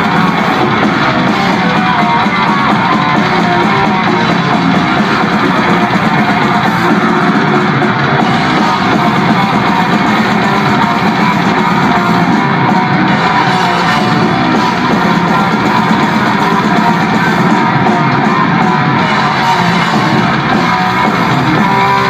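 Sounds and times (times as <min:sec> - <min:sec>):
distorted electric guitars: 0:00.0 - 0:22.0
drums: 0:00.0 - 0:22.0.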